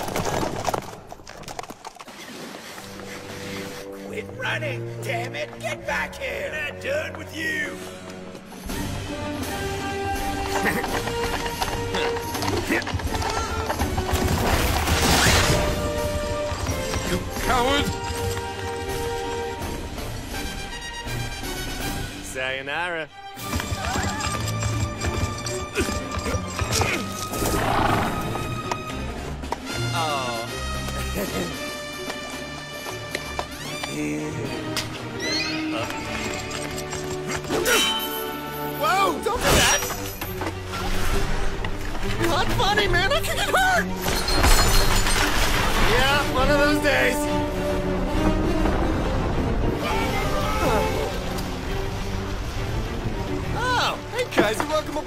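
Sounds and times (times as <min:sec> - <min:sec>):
galloping horse hoofbeats: 0:00.0 - 0:02.2, 0:09.4 - 0:15.0, 0:15.8 - 0:19.5, 0:23.4 - 0:29.7, 0:30.8 - 0:34.0
background music: 0:02.3 - 0:55.0.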